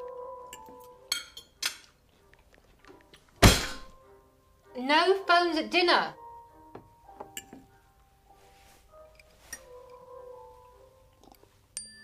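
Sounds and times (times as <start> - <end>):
heavy thunk: 3.4 - 3.9.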